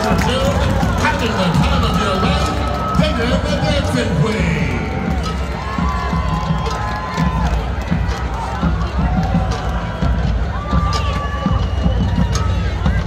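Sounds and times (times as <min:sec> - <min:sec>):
spectators talking: 0:00.0 - 0:13.0.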